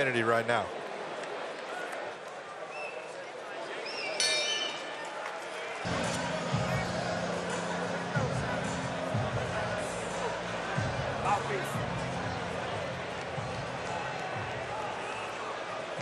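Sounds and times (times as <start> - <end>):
arena crowd noise: 0.0 - 16.0
arena music with bass beat: 5.9 - 14.7.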